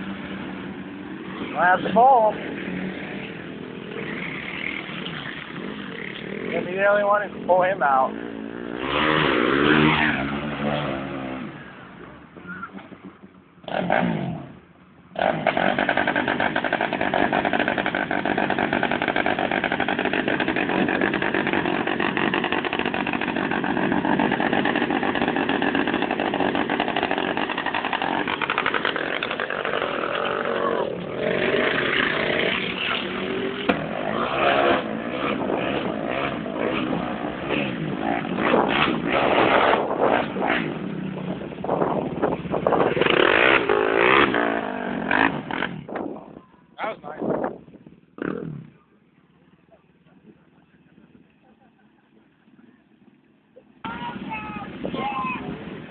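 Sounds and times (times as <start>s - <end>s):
atv engines running: 0.0s - 55.9s.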